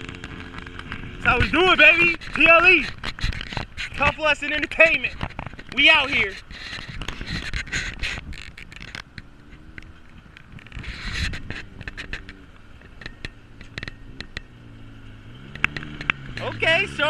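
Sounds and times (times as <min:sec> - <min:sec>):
sharp clicks and crackles: 0:00.0 - 0:14.6, 0:15.4 - 0:16.8
atv engine at low throttle: 0:00.0 - 0:17.0
second off-road engine: 0:00.0 - 0:17.0.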